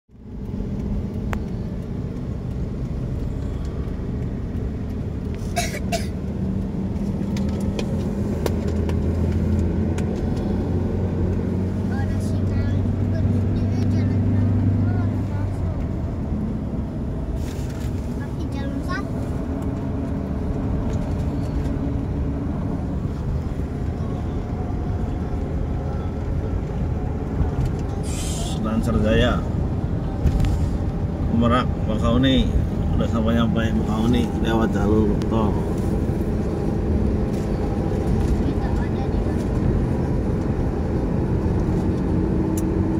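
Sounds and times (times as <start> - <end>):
deep engine hum: 0.1 - 42.9
engine and tyre drone: 0.1 - 42.9.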